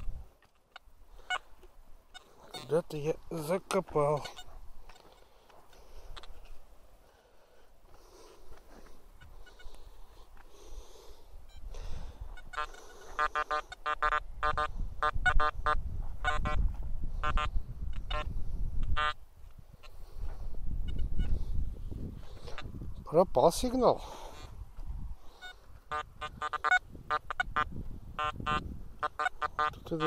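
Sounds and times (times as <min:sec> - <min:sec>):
metal detector beeping: 0:09.2 - 0:09.8, 0:11.5 - 0:11.7, 0:12.3 - 0:16.6, 0:17.2 - 0:19.2, 0:25.4 - 0:29.7.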